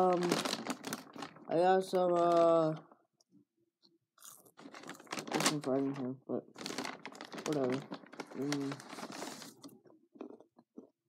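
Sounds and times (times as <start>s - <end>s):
paper bag rustling: 0.0s - 2.8s, 4.6s - 9.7s.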